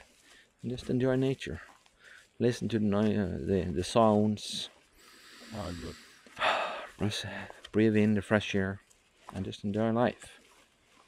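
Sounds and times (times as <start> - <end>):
deep breath in: 5.0 - 6.9.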